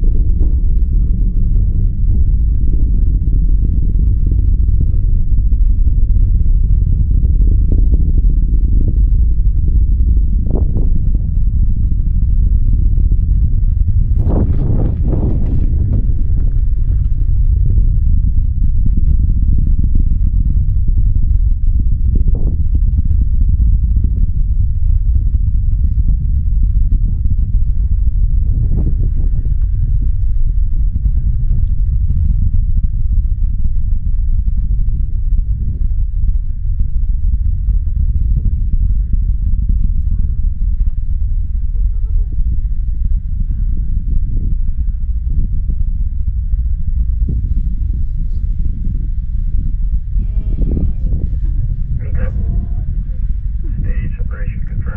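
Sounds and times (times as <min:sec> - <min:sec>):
rocket engines deep rumble: 0:00.0 - 0:54.9.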